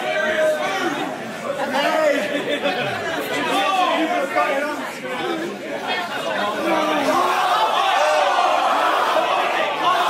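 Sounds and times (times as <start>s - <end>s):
people talking in echoing hall: 0.0s - 10.0s.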